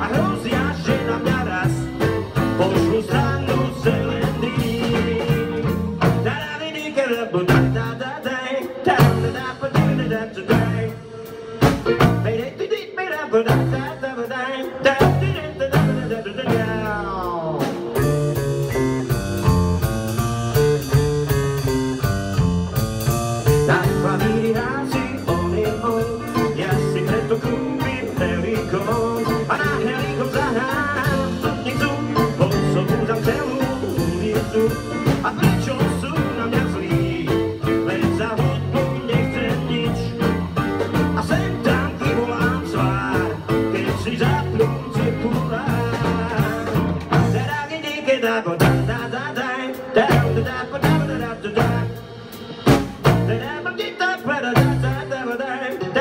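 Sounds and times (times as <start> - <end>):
bass guitar: 0.0 - 56.0
drum kit: 0.0 - 56.0.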